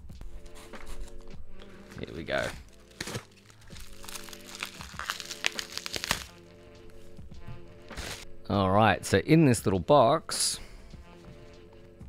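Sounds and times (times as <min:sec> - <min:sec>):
soft background music: 0:00.0 - 0:12.0
bubble wrap crinkling: 0:00.9 - 0:06.6, 0:07.9 - 0:08.2.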